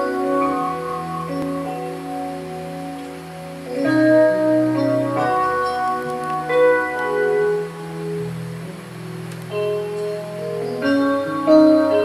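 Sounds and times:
organ-like keyboard music: 0.0 - 12.0.

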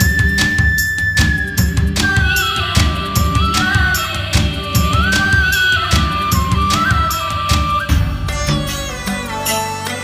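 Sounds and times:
steady drum beat: 0.0 - 9.4.

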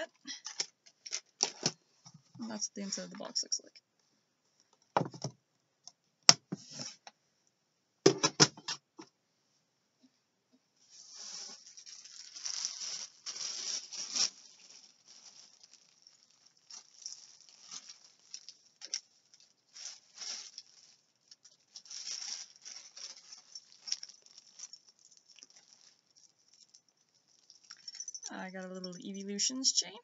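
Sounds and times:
bag rustling and crackling: 11.0 - 28.3.

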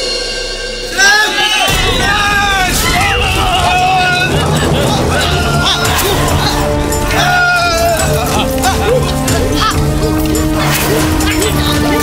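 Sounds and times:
low rumble: 1.7 - 9.2
babble of voices: 2.1 - 12.0.

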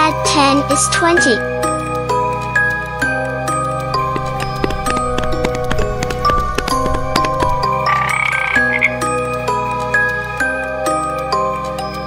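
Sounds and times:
cheerful children's music: 0.0 - 5.4
cartoon frog croak: 7.8 - 9.1.

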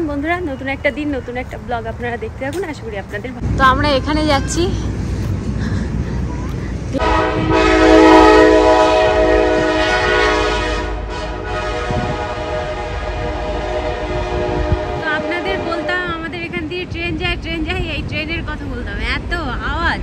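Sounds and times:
locomotive air horn blast: 7.0 - 16.3.

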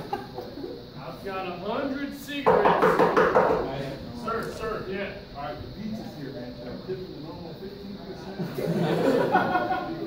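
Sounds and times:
voices on a stage: 0.0 - 10.0.

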